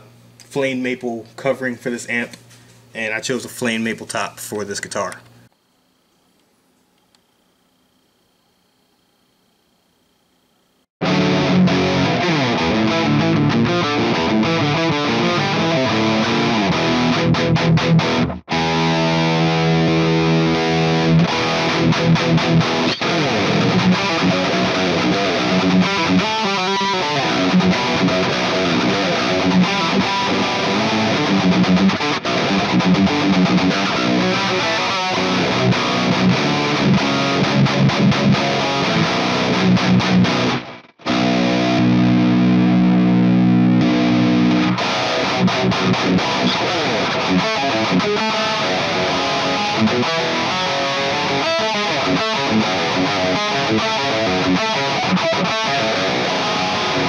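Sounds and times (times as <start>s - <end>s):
distorted electric guitar riffs: 11.0s - 57.0s.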